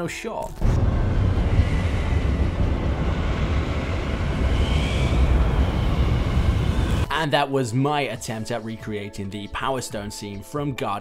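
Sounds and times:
deep rumble with hiss: 0:00.6 - 0:07.1
faint whistling tone: 0:04.0 - 0:07.0.

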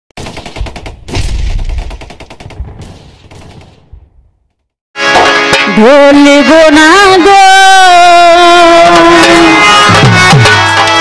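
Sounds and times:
rapid machine-gun-like fire: 0:00.2 - 0:04.0
deep booms: 0:00.6 - 0:04.6.

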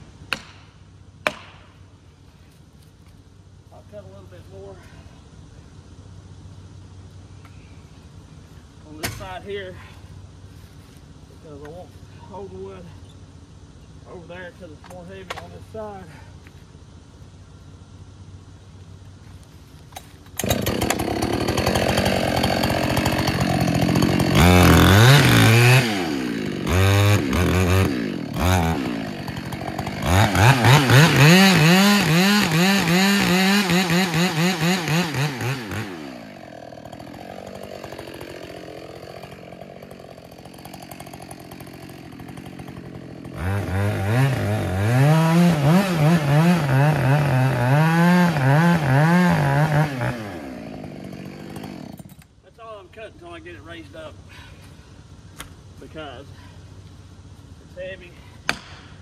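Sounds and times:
chainsaw cutting wood: 0:00.0 - 0:01.7, 0:20.3 - 0:52.3, 0:58.5 - 0:59.0
chainsaw revving: 0:20.4 - 0:52.2.

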